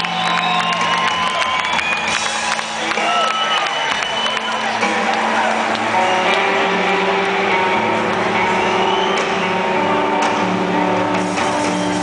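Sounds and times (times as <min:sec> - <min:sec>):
live rock band playing chords: 0:00.0 - 0:12.0.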